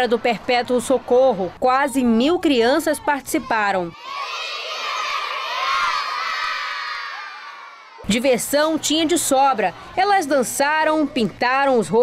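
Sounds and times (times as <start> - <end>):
crowd of children shouting and cheering: 2.8 - 12.0.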